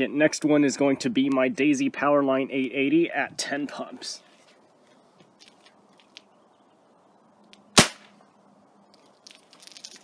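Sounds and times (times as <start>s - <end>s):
air rifle crack: 7.8s - 8.2s.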